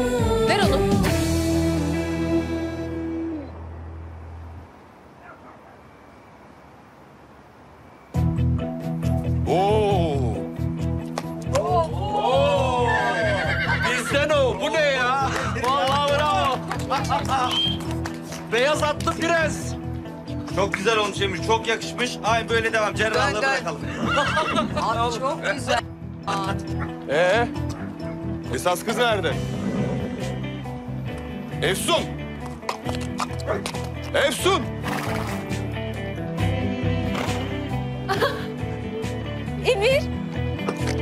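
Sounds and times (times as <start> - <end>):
background music: 0.0 - 4.4, 8.1 - 41.0
horse neighing: 13.2 - 14.1, 23.8 - 24.8, 29.4 - 30.4
horse hooves clip-clopping: 32.4 - 34.2.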